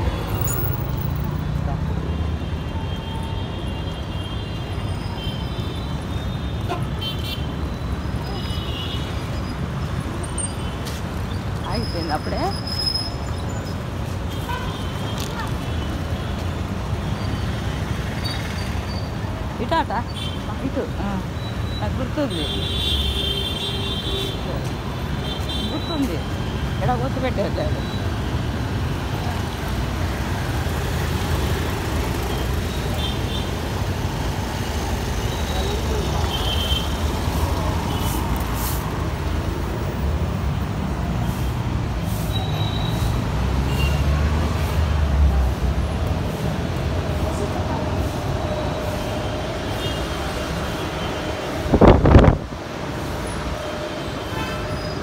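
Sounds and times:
rumble of passing vehicles: 0:00.0 - 0:55.0.

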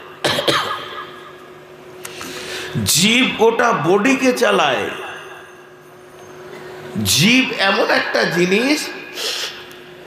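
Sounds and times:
faint steady hum: 0:00.0 - 0:10.0
man coughing over loudspeaker: 0:00.1 - 0:01.2.

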